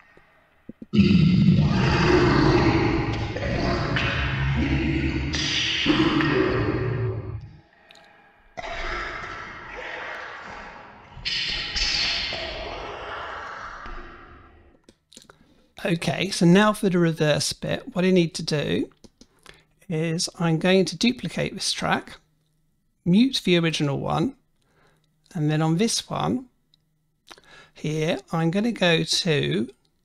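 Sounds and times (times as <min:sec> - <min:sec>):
slowed man's voice with reverb: 0:01.0 - 0:07.5, 0:08.6 - 0:14.6.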